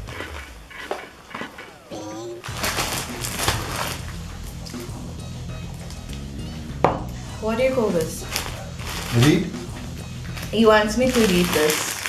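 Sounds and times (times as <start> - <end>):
snack crunching: 0.0 - 5.1, 8.0 - 12.0
person humming: 1.9 - 3.8
plastic packet crinkling: 2.4 - 4.1, 8.0 - 12.0.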